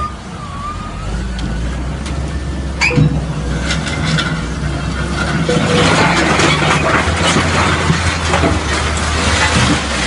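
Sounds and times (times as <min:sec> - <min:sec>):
diesel engine running under load: 0:00.0 - 0:10.0
debris clanking and scraping: 0:02.8 - 0:10.0.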